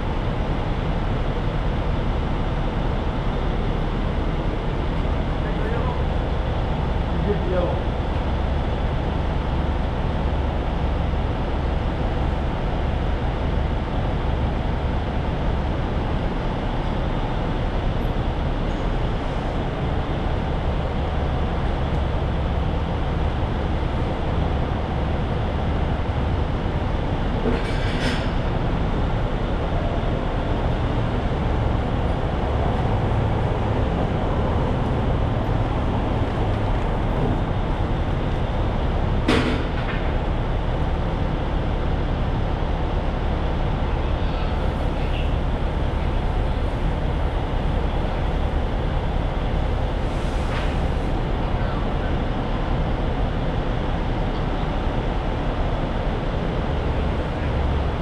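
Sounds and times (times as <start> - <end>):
heavy machinery rumbling: 0.0 - 58.0.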